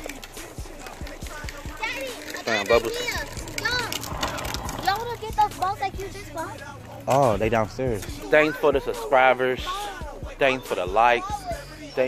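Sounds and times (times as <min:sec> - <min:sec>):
plastic trike wheels rattling on concrete: 0:00.0 - 0:11.5
children calling out: 0:01.3 - 0:06.8.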